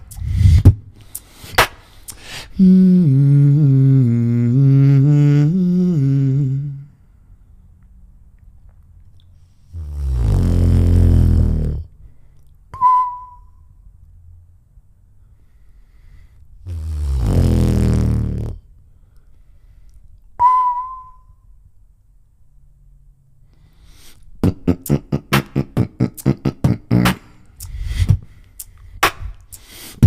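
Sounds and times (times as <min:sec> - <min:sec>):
beatboxing vocal bass: 0:00.0 - 0:06.9, 0:09.6 - 0:12.0, 0:16.6 - 0:18.7, 0:24.0 - 0:30.0
mouth click: 0:01.0 - 0:02.3, 0:24.8 - 0:27.8, 0:28.4 - 0:30.0
short high whistle: 0:12.7 - 0:13.7, 0:20.4 - 0:21.5.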